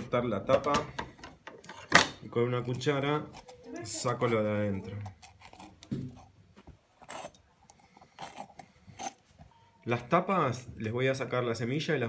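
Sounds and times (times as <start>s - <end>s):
metal spoon scraping pepper: 2.6s - 6.4s, 7.0s - 9.2s.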